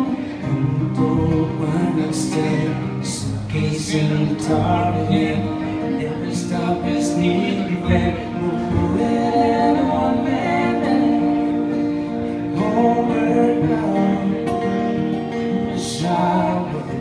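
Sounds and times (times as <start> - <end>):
acoustic guitars: 0.0 - 17.0
person singing: 0.0 - 17.0.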